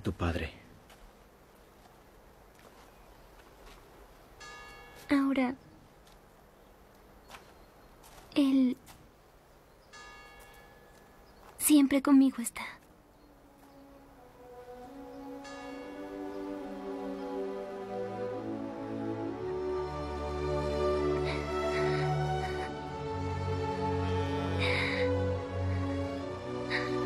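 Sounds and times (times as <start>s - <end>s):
bell ringing: 4.4s - 5.2s, 9.9s - 11.1s, 15.4s - 16.6s
soft sustained music: 9.7s - 27.0s.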